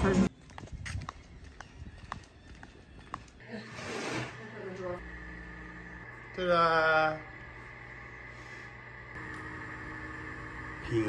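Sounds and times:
steady faint hum: 4.4 - 11.0.

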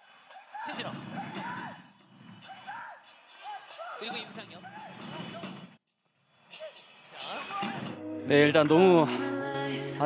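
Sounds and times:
background music: 7.5 - 10.0.

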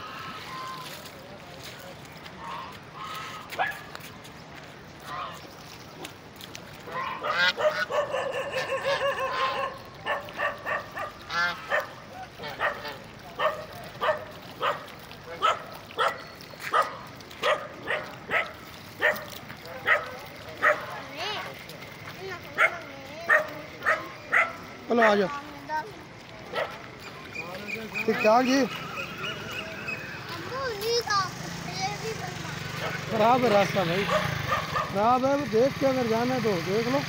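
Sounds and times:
geese honking: 2.4 - 3.5, 5.0 - 5.5, 6.9 - 13.2.

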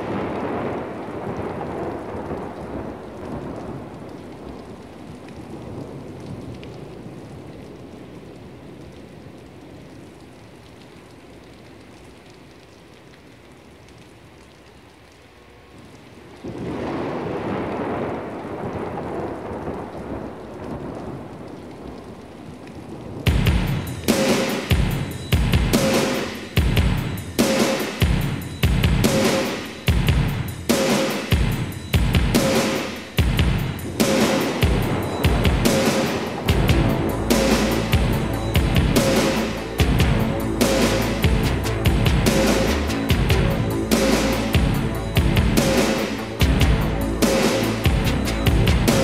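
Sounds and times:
rolling thunder: 0.0 - 9.3, 16.4 - 49.0
steady rain: 0.0 - 49.0
band music with drums: 23.3 - 49.0.

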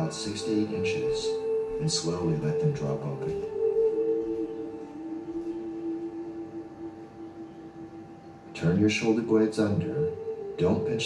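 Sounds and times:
ambient synthesizer drone music: 0.0 - 11.0.

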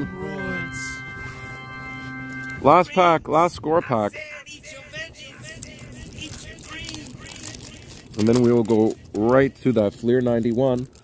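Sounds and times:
paper wrapper tearing and crinkling: 5.5 - 11.0.

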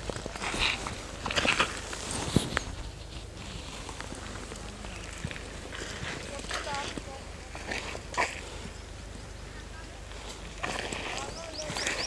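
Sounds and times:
faint indistinct voices: 3.9 - 12.0
bird chirping rapidly: 11.1 - 12.0.

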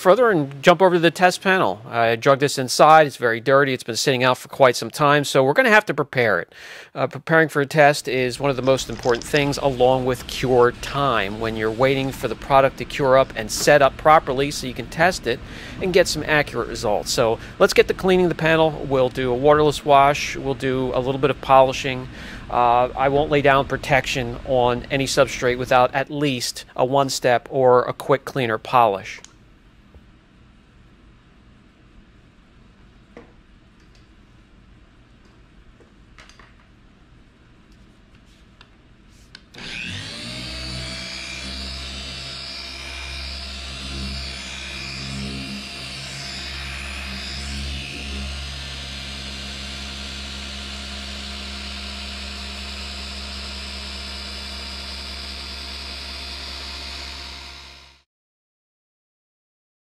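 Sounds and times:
electric polisher running: 8.7 - 13.4, 39.6 - 58.0.

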